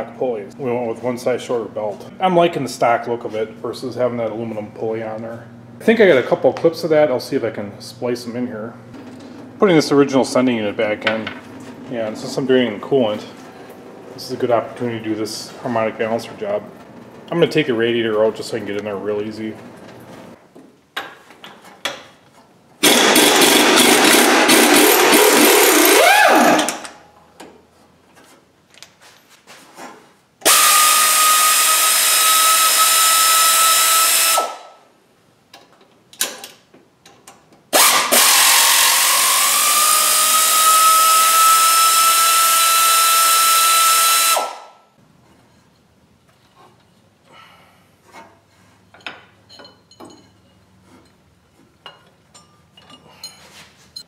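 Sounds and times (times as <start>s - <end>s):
power tool whining: 22.8s - 27.0s, 30.4s - 34.6s, 37.8s - 44.6s
faint clinks of tools: 48.9s - 51.2s, 51.8s - 54.0s.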